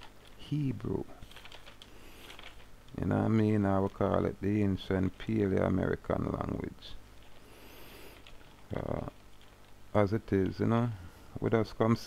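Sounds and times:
person speaking: 0.0s - 7.1s, 8.6s - 9.2s, 9.9s - 12.0s.

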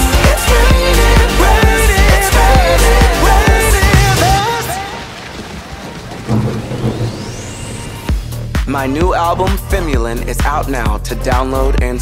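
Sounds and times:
rain hiss: 1.4s - 8.7s
thunder rumble: 3.2s - 9.5s.

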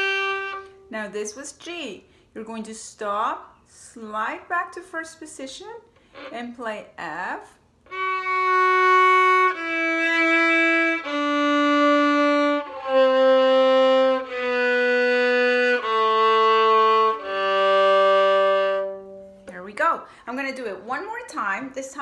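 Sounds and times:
violin playing descending scale: 0.0s - 0.9s, 7.9s - 19.4s.

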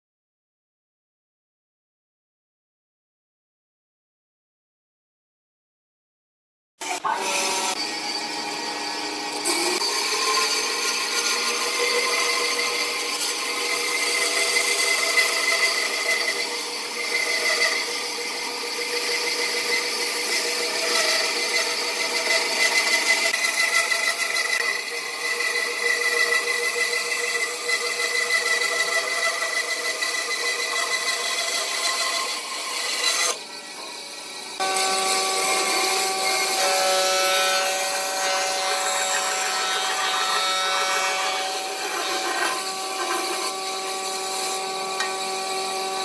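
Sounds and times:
band saw cutting wood: 6.8s - 46.0s.

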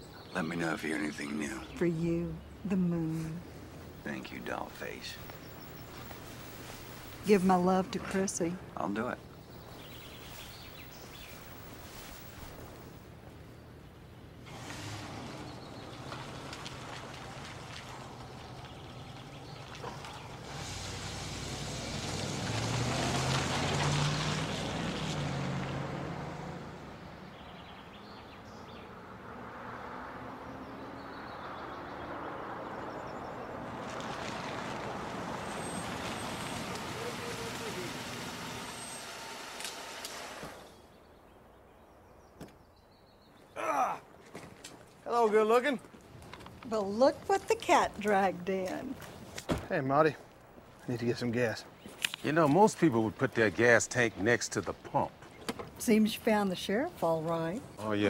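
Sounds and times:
car engine and tyres: 3.4s - 7.2s, 9.4s - 41.3s.

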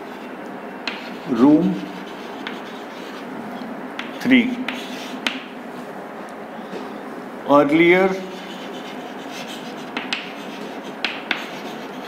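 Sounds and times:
chalk scratching on chalkboard: 0.1s - 3.3s, 4.0s - 5.4s, 8.2s - 12.0s
chalk tapping on board: 0.9s - 1.1s, 2.0s - 3.2s, 4.0s - 5.5s, 8.4s - 12.0s.

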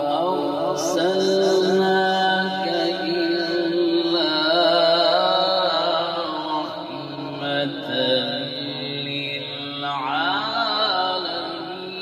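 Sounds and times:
man chanting through loudspeakers: 0.0s - 12.0s.

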